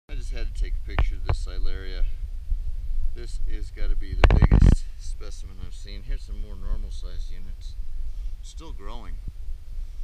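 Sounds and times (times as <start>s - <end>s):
man speaking: 0.1s - 2.2s, 3.2s - 7.8s, 8.4s - 9.2s
low rumble: 0.1s - 10.0s.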